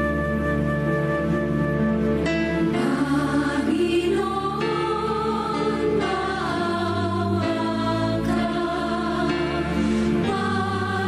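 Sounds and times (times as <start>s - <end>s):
instrumental accompaniment: 0.0s - 11.0s
choir singing a chant: 2.7s - 11.0s.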